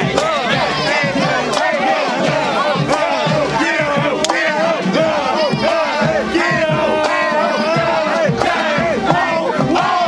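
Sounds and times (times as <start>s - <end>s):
players shouting together: 0.0s - 10.0s.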